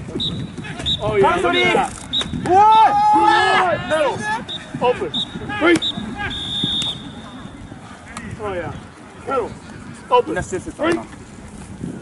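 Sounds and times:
whistle blown: 0:00.1 - 0:01.1, 0:02.0 - 0:02.5, 0:03.9 - 0:07.5.

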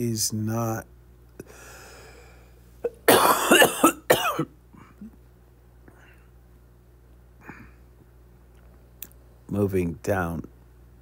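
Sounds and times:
person coughing: 0:02.8 - 0:05.2.

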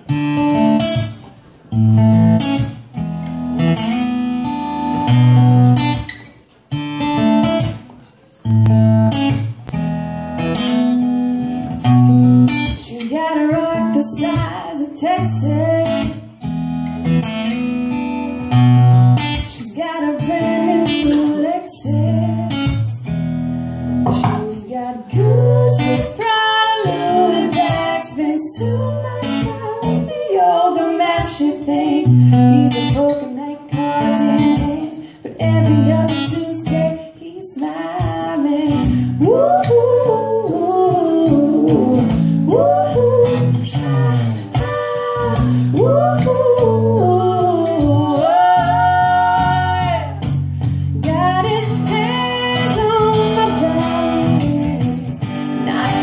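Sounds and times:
acoustic guitar strumming: 0:00.0 - 0:37.2, 0:37.8 - 0:56.0
woman singing: 0:12.5 - 0:16.5, 0:19.2 - 0:23.1, 0:24.1 - 0:50.4, 0:51.0 - 0:56.0.

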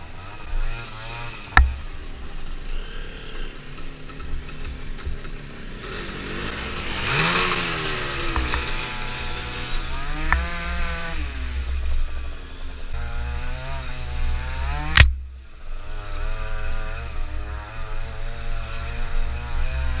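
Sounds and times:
two-stroke scooter engine revving: 0:00.0 - 0:20.0.

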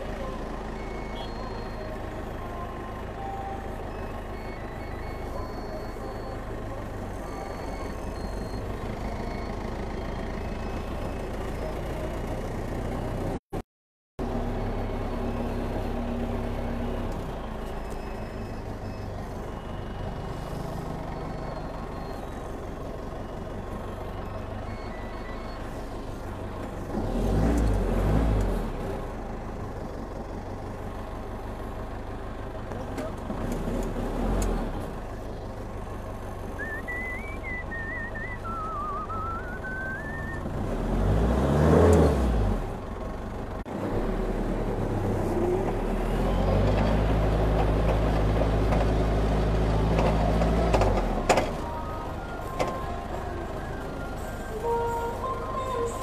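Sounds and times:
forklift engine revving: 0:14.2 - 0:56.0.

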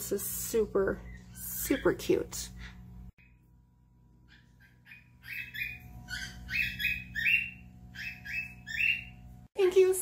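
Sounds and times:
faint steady hum: 0:00.0 - 0:10.0
animal squeaky calls: 0:04.3 - 0:09.1.

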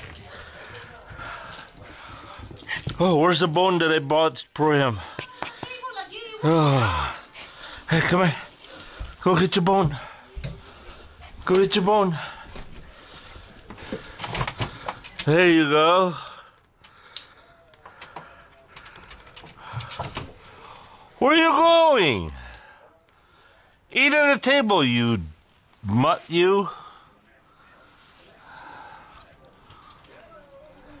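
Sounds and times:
small dog playing: 0:00.0 - 0:03.1
dog paws on wooden deck: 0:00.0 - 0:06.4, 0:07.3 - 0:15.4.

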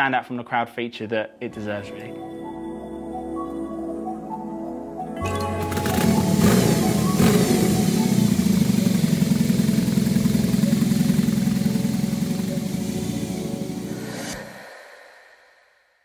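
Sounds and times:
motorcycle engine revving: 0:05.4 - 0:14.3.

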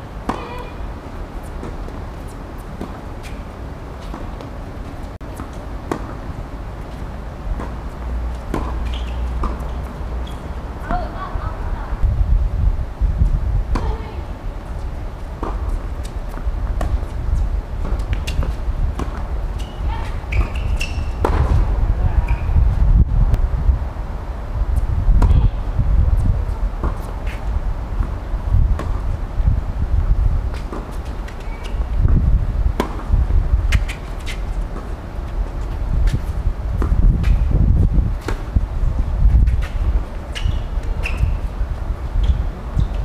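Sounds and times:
steady low rumble: 0:00.0 - 0:20.3, 0:21.0 - 0:43.0
racket striking ball: 0:00.2 - 0:00.8, 0:08.5 - 0:09.6, 0:32.8 - 0:33.1
tennis balls struck and bouncing: 0:00.2 - 0:00.8, 0:01.4 - 0:06.3, 0:07.5 - 0:11.3, 0:17.8 - 0:21.7, 0:30.5 - 0:36.2.

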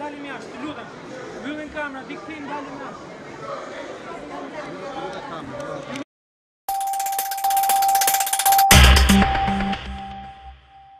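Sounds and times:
voices talking in a large hall: 0:00.0 - 0:06.0
electronic news sting: 0:06.7 - 0:10.9.

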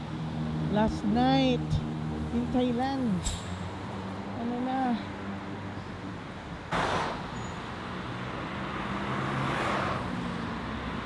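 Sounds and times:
road traffic: 0:00.0 - 0:11.0
vehicle passing by: 0:06.8 - 0:11.0.

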